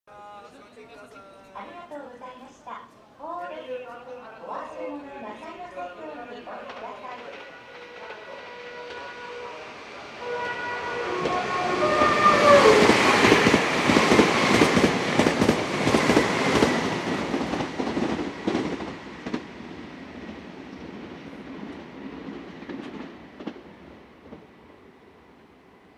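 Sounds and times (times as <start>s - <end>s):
train horn melody: 7.2s - 13.8s.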